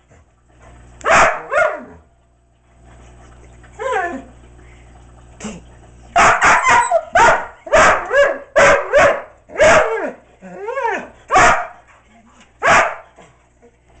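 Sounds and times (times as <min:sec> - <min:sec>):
dog barking: 0:01.0 - 0:02.0, 0:06.2 - 0:10.1, 0:11.3 - 0:11.8, 0:12.6 - 0:13.1.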